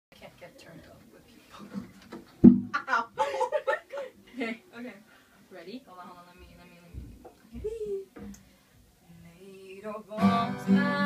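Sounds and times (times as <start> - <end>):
acoustic guitar thump: 2.4 - 2.8
light laughter: 3.2 - 4.2.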